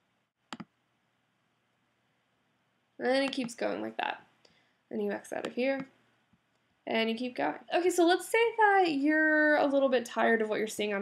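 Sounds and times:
computer mouse click: 0:00.5 - 0:00.8.

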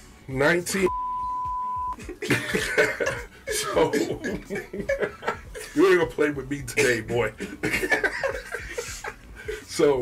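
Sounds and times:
censor bleep: 0:00.9 - 0:02.0
laughter: 0:02.0 - 0:06.0, 0:06.8 - 0:09.6.

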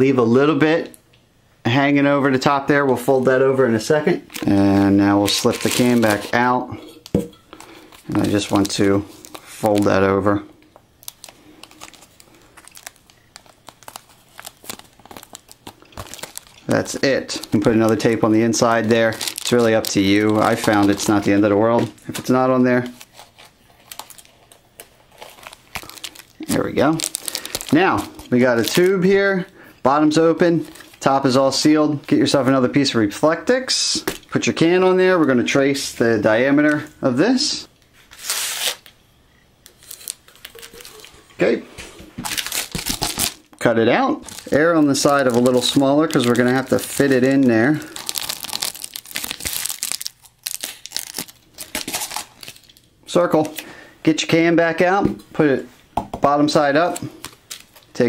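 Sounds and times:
foil insulation crinkling: 0:04.3 - 0:06.6, 0:07.5 - 0:29.5, 0:39.6 - 0:41.4, 0:42.2 - 0:53.6, 0:56.8 - 0:58.0.

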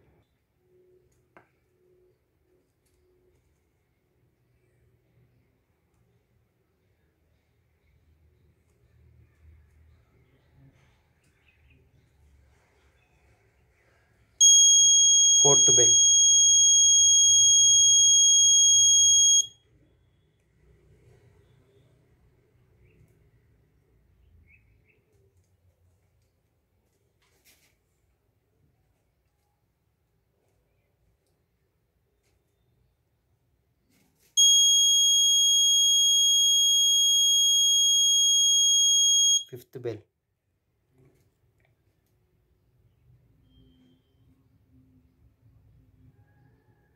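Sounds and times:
high-pitched buzzer beep: 0:14.4 - 0:19.6, 0:34.4 - 0:39.5.

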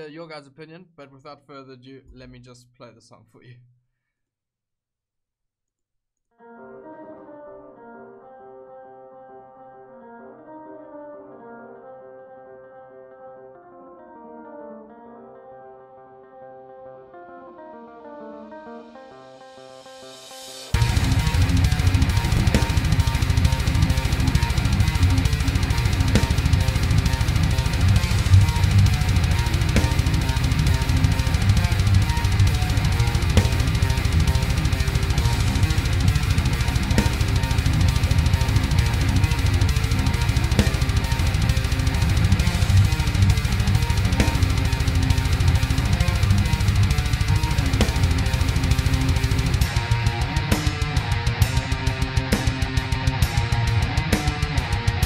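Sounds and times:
distorted electric guitars: 0:19.5 - 0:55.0
heavy metal song: 0:19.8 - 0:55.0
busy bass drum: 0:20.8 - 0:55.0.

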